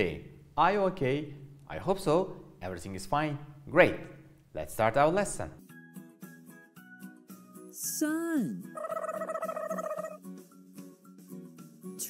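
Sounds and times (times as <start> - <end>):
light children's music: 5.6 - 12.0.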